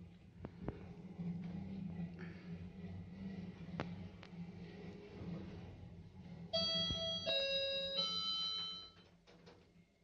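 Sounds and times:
low steady hum: 0.0 - 10.0
lift arrival chime: 6.4 - 9.2.

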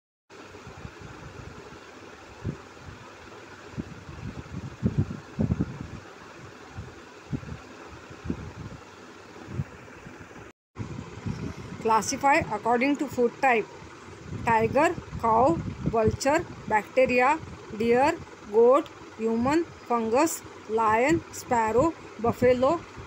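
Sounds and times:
low thumps and rumbles: 13.7 - 19.8.

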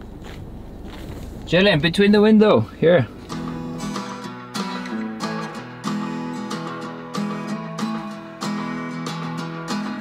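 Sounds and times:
acoustic guitar strumming chords: 3.0 - 10.0.

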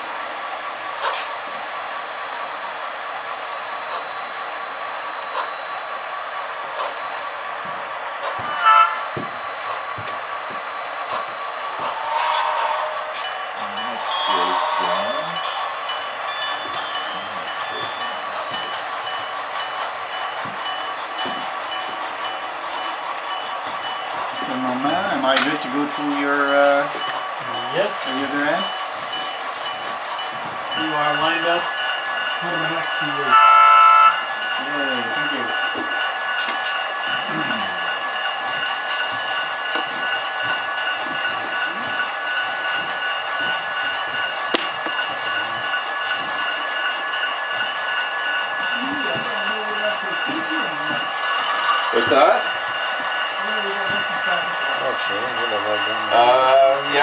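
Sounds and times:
model train running: 0.0 - 57.0
low voices: 13.2 - 19.3, 24.2 - 29.7, 34.5 - 38.8.

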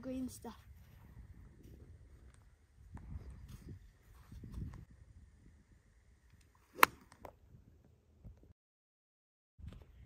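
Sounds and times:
wind rumbling on microphone: 0.5 - 8.6.

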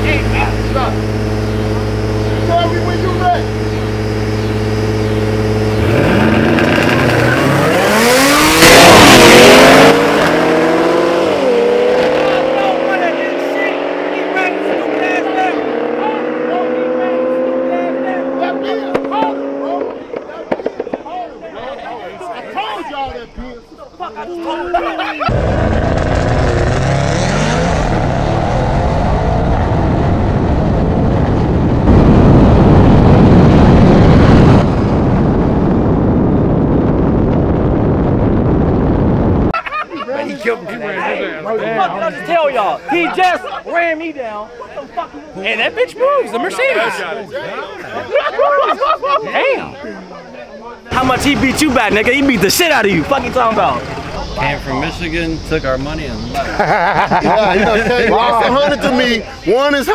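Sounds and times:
loud bursts of noise: 0.0 - 16.6, 25.3 - 39.5, 50.9 - 57.3
car engine accelerating: 0.0 - 20.3, 25.3 - 37.0, 50.9 - 59.9
rushing wind-like noise: 25.3 - 39.6.

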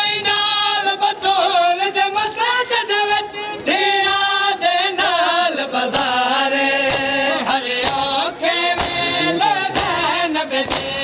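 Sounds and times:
man chanting a lament: 6.7 - 10.6.

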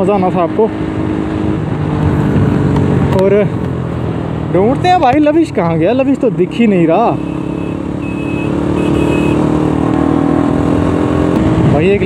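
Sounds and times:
motorcycle engine cruising: 0.0 - 12.0
wind and road noise: 0.0 - 12.0.

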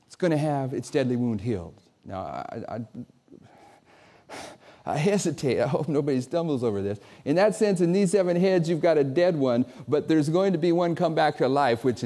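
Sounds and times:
man talking: 0.0 - 3.4, 4.8 - 12.0
man breathing in: 3.4 - 4.9.

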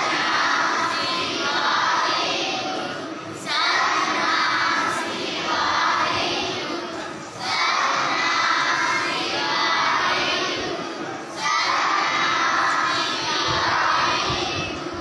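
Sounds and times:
children reciting in unison: 0.0 - 15.0.

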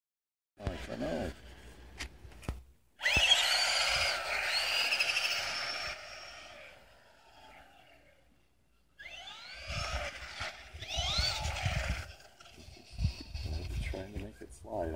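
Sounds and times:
toy car motor whining: 3.0 - 14.2.

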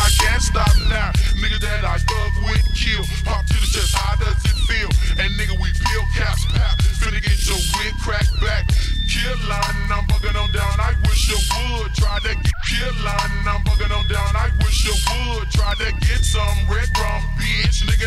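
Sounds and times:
slowed hip hop with rap vocals: 0.0 - 18.0.

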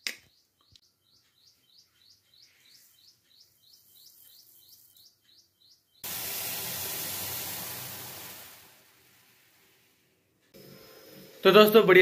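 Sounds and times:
bird chirping: 0.0 - 6.1
loud steady hiss: 6.0 - 10.0, 10.6 - 12.0.

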